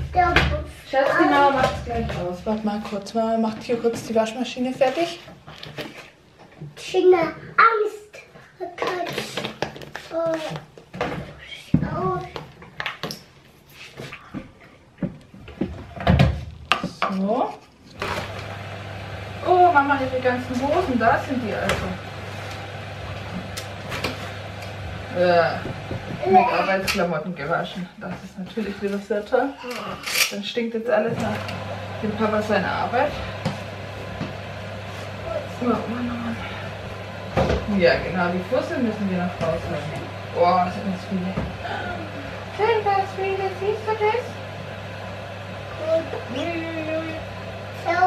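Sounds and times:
heavy thump: 25.6s - 26.3s.

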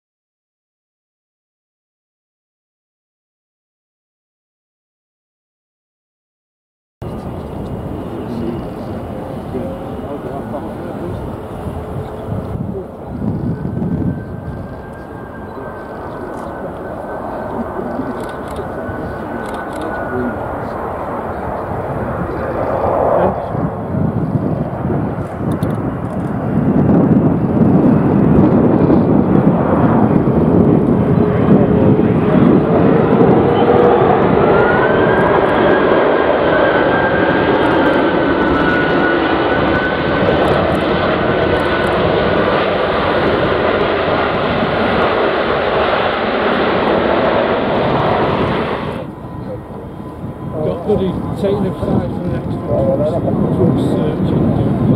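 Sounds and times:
jet engines with fan whine: 7.0s - 54.9s.

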